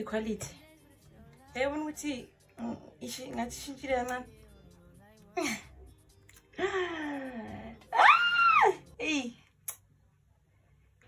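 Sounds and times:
woman's high-pitched squeal: 7.9s - 8.8s.

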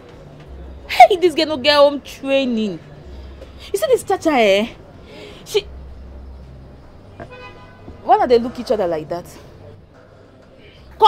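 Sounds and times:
vehicle horn toot: 7.2s - 8.0s.

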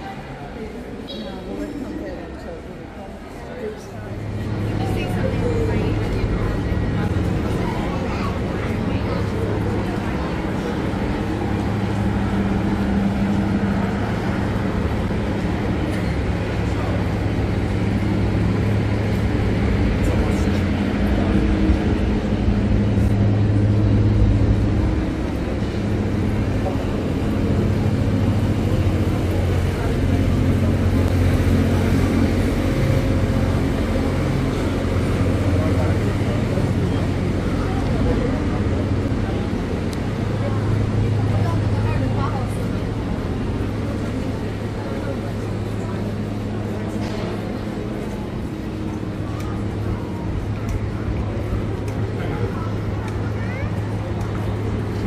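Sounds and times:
passers-by talking: 0.0s - 55.0s
traffic hum: 0.0s - 55.0s.

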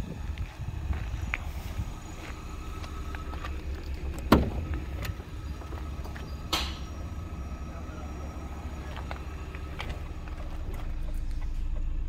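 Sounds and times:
low rumble: 0.0s - 12.0s
car door latch clicking: 4.0s - 5.2s.

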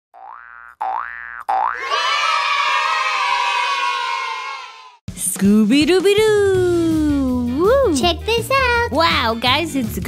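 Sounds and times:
cartoon boing swoops: 0.2s - 1.9s.

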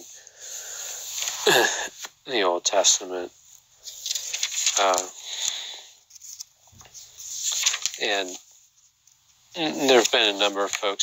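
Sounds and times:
man inhaling: 0.2s - 1.1s
man speaking: 2.2s - 3.4s, 4.8s - 5.2s, 8.0s - 8.4s, 9.6s - 11.0s.

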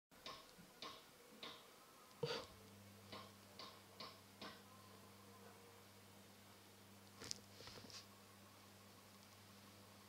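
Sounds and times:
faint low hum: 0.2s - 10.0s.

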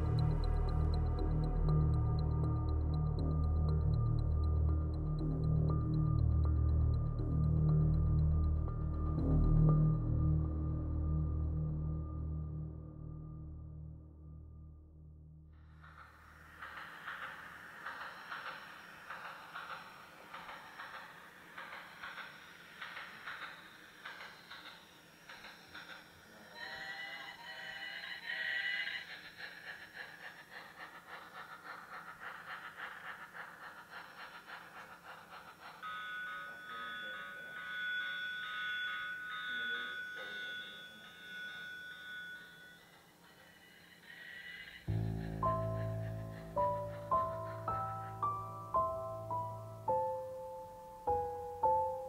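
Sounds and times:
quiet background music: 0.0s - 52.0s
toy train clicking on track: 16.6s - 44.8s
tinkling melody: 35.7s - 43.6s, 45.4s - 52.0s.

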